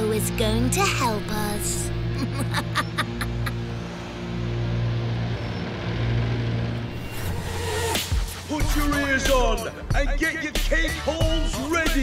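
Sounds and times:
cartoon vehicle engines droning: 0.0s - 9.9s.

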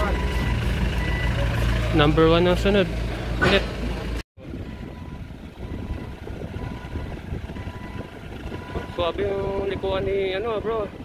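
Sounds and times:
man's voice: 8.9s - 11.0s.

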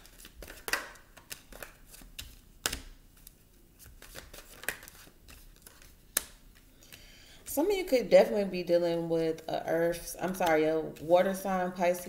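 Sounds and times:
cards clicking and slapping on wood: 0.0s - 7.0s.

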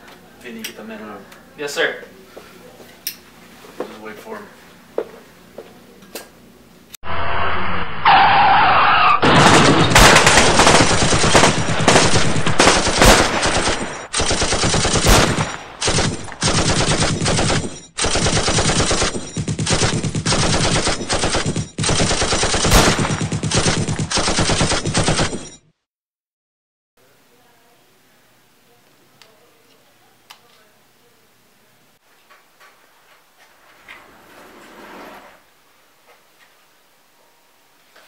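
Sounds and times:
machine-gun fire: 9.2s - 25.6s.

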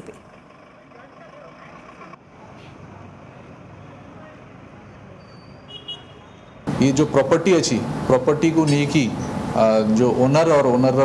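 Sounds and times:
vehicle engine running: 0.0s - 3.8s, 6.7s - 11.0s.

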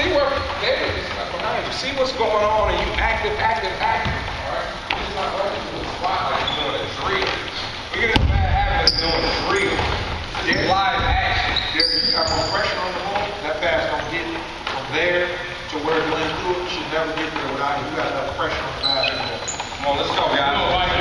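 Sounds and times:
players and coaches talking: 0.0s - 21.0s
basketballs bouncing on a court: 3.9s - 5.2s.

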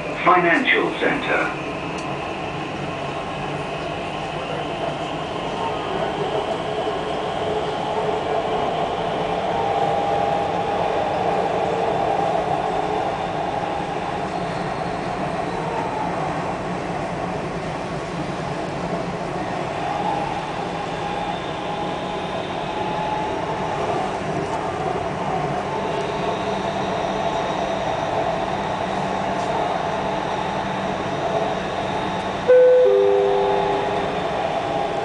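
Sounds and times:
train rumble with faint whine: 0.0s - 35.0s
two-note descending chime: 32.5s - 34.2s.

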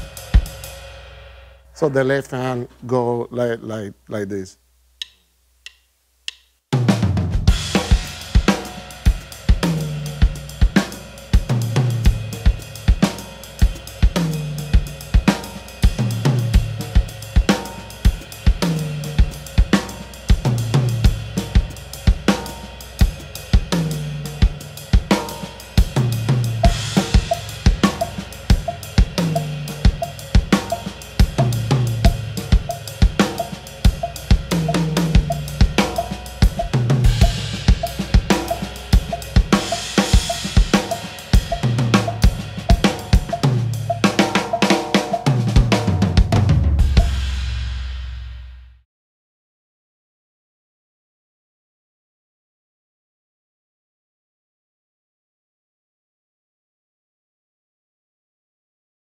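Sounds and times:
drum kit latin jazz groove: 0.0s - 2.8s, 6.3s - 48.4s
cymbal wash: 21.1s - 45.6s
low drum stroke falling in pitch: 25.9s - 48.6s.

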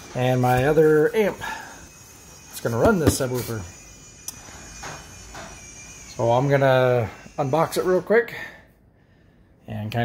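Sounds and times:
hands rustling cardboard boxes: 2.7s - 3.6s.

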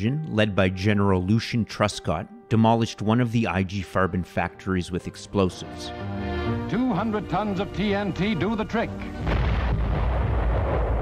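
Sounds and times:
explosion bang: 9.2s - 11.0s
low rumble: 9.3s - 11.0s.

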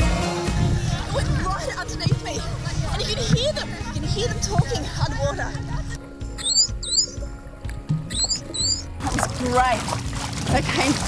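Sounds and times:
background music with held tones: 0.0s - 11.0s
high chirping sweeps: 6.4s - 7.2s, 8.1s - 8.9s.

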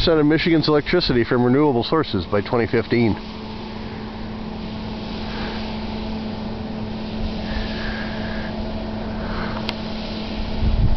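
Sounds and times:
wind hiss: 0.0s - 10.9s
wind turbine humming: 0.0s - 10.9s
wind rumble on microphone: 9.6s - 10.9s.

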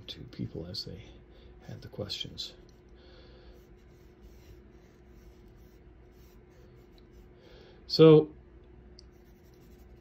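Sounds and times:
low steady hum: 0.0s - 10.0s
paintbrush scratching on panel: 3.5s - 7.4s, 9.1s - 10.0s.

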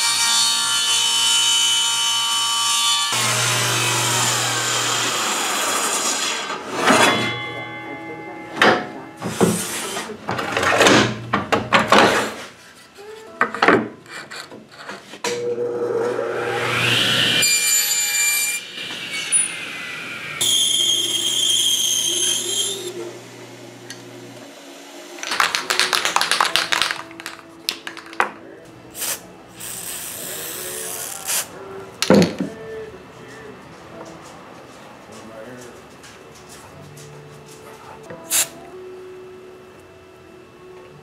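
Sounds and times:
table saw whining: 3.1s - 7.6s, 15.3s - 25.2s.

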